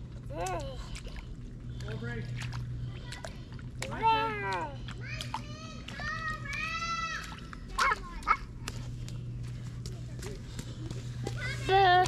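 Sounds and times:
boots splashing in a puddle: 0.0 - 12.0.

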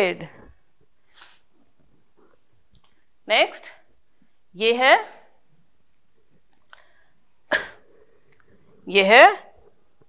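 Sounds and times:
woman coughing: 7.5 - 7.8.

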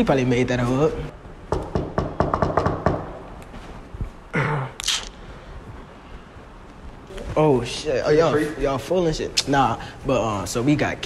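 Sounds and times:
knuckles knocking on door: 1.5 - 3.1.

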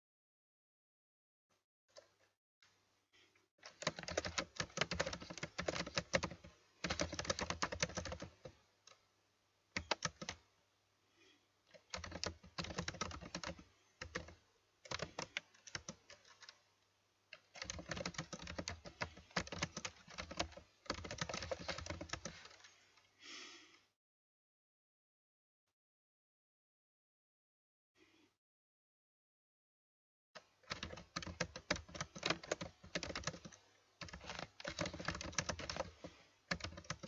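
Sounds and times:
typing on computer keyboard: 3.6 - 8.6, 9.8 - 10.4, 11.7 - 16.6, 17.3 - 22.6, 30.4 - 37.0.

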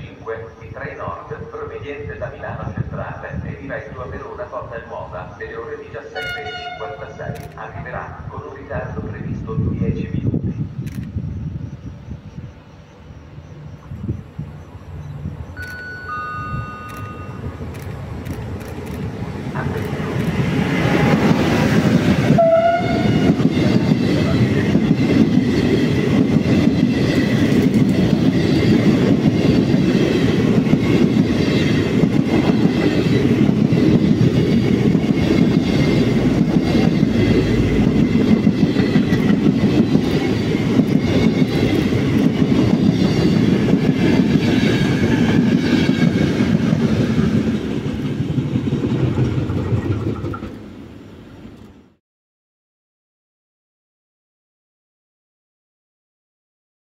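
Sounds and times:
train wheels rumbling on rails: 0.0 - 52.0
thin high tone: 15.6 - 17.9.

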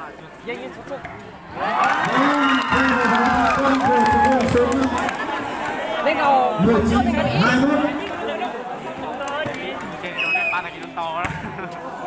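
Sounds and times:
spectators shouting: 1.5 - 6.4.

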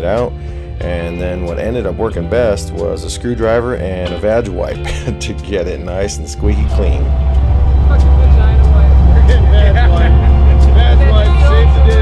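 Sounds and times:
men talking: 0.0 - 12.0
loud steady low rumble: 6.4 - 12.0.

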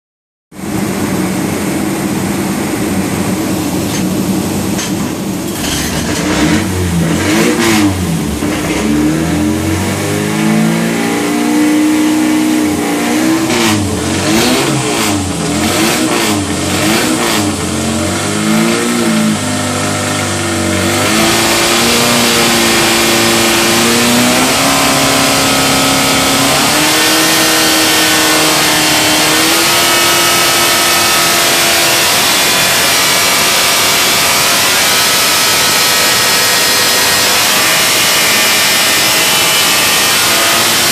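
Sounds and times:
engine revving on dynamometer: 5.4 - 40.9.

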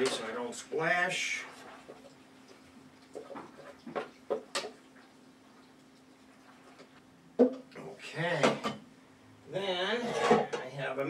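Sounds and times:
wooden spoon scraping a pot: 9.9 - 10.7.

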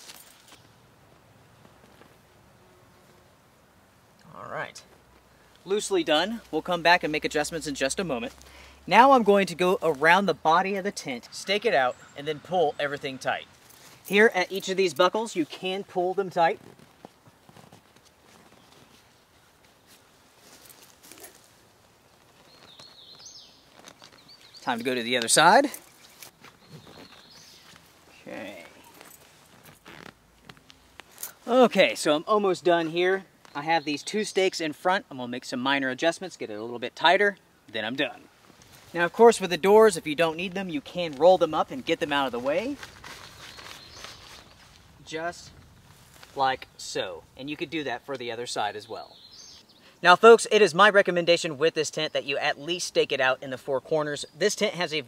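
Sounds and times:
rustling of tent fabric: 0.0 - 3.4, 4.7 - 10.5, 12.0 - 33.6, 38.0 - 47.3
bird chirping: 10.9 - 13.7, 22.4 - 29.0, 39.3 - 45.9, 48.8 - 50.0.

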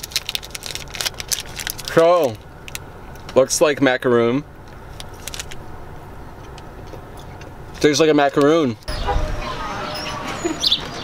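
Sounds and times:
foil wrapper crinkling: 0.0 - 2.9, 4.9 - 5.6.

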